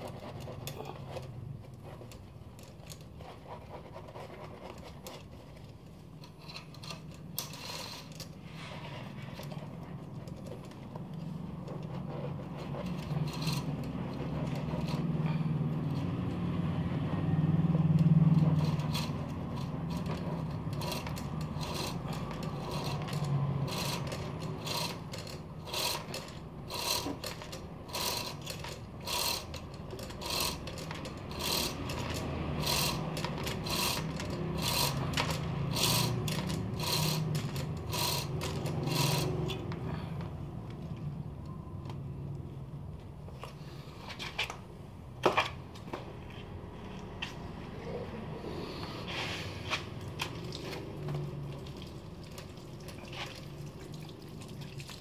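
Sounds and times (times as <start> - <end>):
bike chain clicking and rattling: 0.0 - 16.4, 17.7 - 39.8
cloth scrubbing bike chain: 0.0 - 39.8, 49.0 - 55.0.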